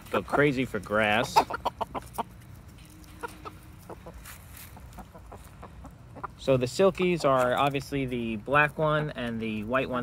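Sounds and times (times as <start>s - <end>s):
chickens clucking: 0.0s - 9.9s.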